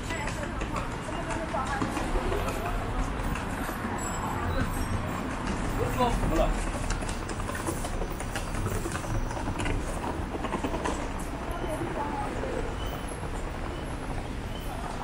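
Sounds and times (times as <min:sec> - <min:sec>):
passers-by talking: 0:00.0 - 0:15.0
traffic noise: 0:00.0 - 0:15.0.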